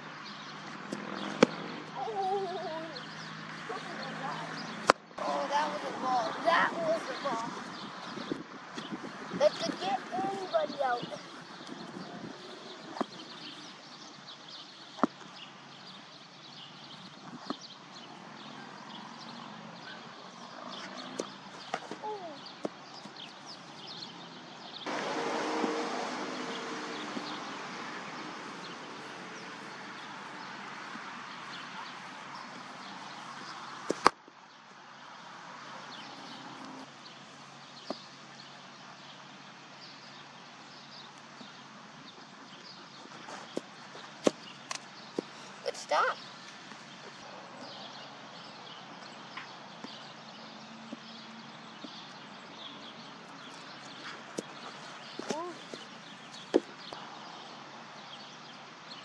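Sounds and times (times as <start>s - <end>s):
outdoor background noise: 0.0s - 59.0s
small birds chirping: 0.0s - 59.0s.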